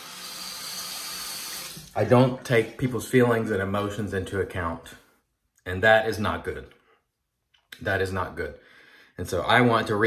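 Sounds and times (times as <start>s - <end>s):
water running from sink tap: 0.0s - 2.1s.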